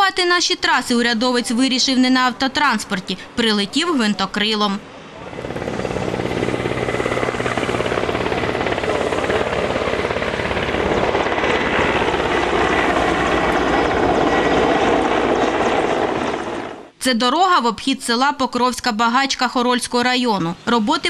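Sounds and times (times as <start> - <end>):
helicopter rotor beating: 5.1 - 16.9.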